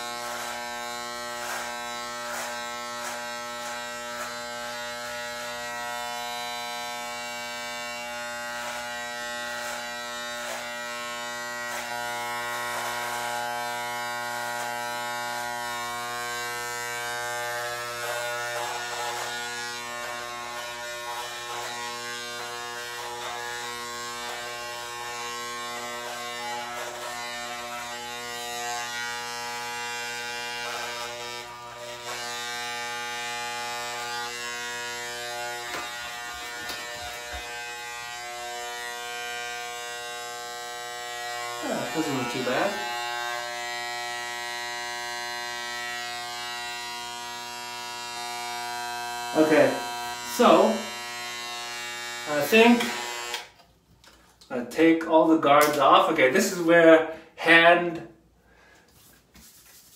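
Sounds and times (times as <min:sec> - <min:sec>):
electric hair clippers buzzing: 0:00.0 - 0:53.7.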